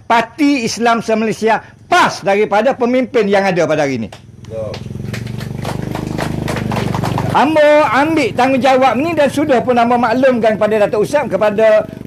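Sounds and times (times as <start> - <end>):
small engine running: 1.6 - 12.0.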